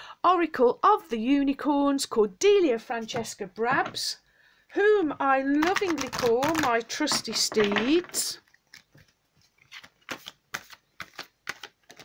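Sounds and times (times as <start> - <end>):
cards being shuffled: 5.5 - 12.0.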